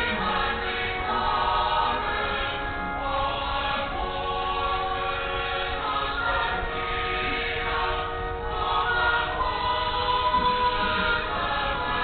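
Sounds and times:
choir singing sacred music: 0.0 - 12.0.

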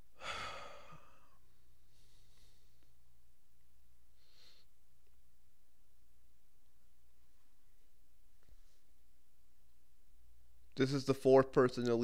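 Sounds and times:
faint low hum: 0.0 - 12.0
person sighing: 0.2 - 1.4.

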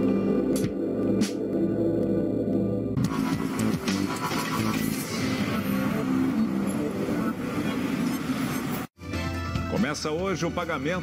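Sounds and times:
news theme music: 0.0 - 8.0
car traffic: 0.1 - 9.0.

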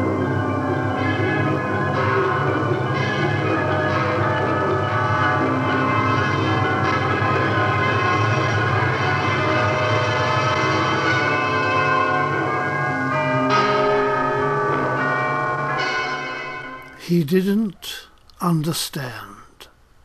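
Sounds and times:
bell-like ringing chords: 0.0 - 17.8.

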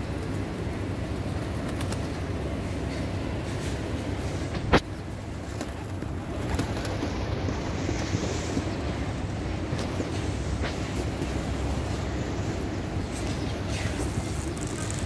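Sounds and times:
low street rumble: 0.0 - 15.0
pigeons flapping wings: 0.0 - 15.0.

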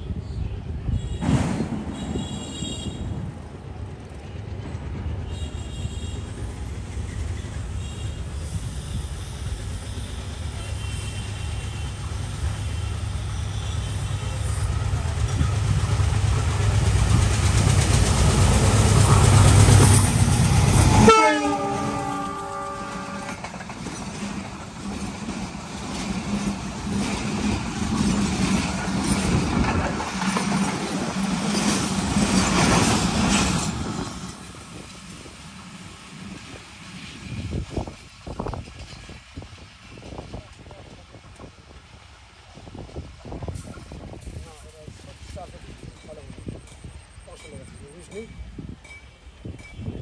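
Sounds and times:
train engine and wheel rumble: 0.0 - 50.0
train horn blasts: 9.7 - 12.0, 20.9 - 23.5
train horn note dropping in pitch: 21.0 - 23.4.

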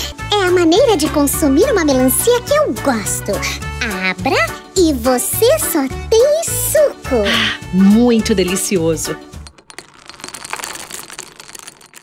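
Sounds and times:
candies pouring and clattering: 8.4 - 12.0.

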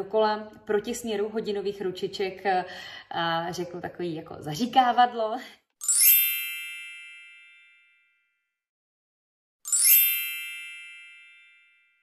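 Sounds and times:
sparkle chime: 5.8 - 8.3, 9.7 - 12.0.

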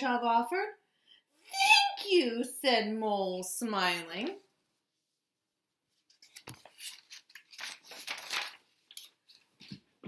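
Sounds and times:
paper pages rustling: 5.9 - 10.0.

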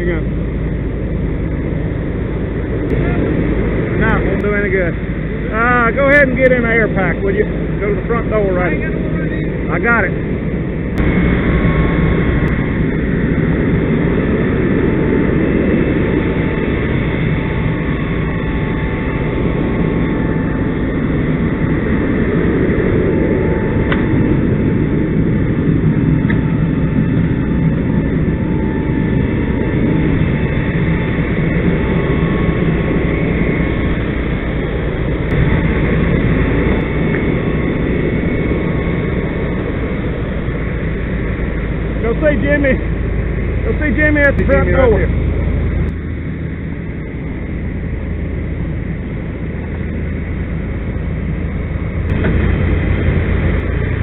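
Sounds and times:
diesel engine and pump droning: 0.0 - 54.0.

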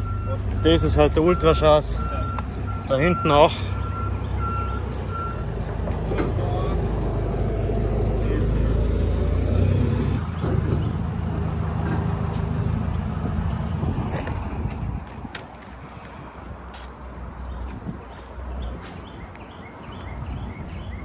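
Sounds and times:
reversing alarm beeping: 0.0 - 5.6
vehicle engine low rumble: 0.0 - 21.0.

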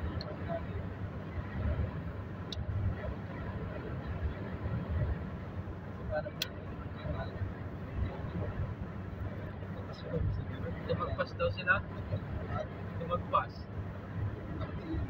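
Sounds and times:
road and engine rumble inside car: 0.0 - 15.0.

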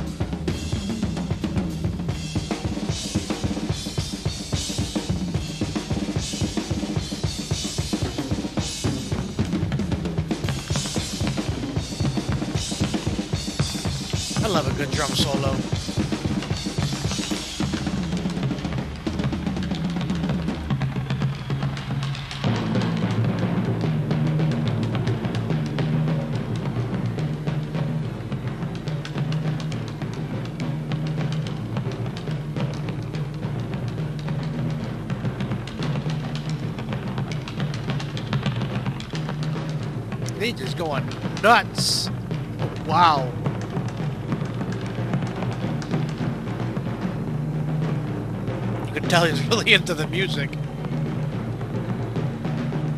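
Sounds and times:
rock drum solo: 0.0 - 52.9.

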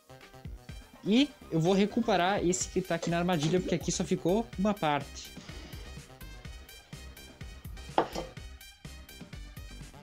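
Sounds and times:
background music with steady beat: 0.0 - 10.0
glassware clinking: 2.9 - 3.9, 7.9 - 8.4.

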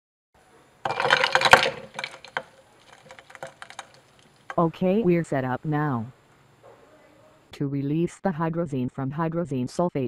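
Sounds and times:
ice clattering against glass: 0.8 - 4.6.

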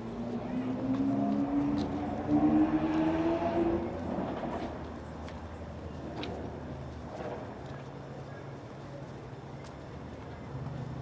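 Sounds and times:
vehicle accelerating past: 0.3 - 4.6.

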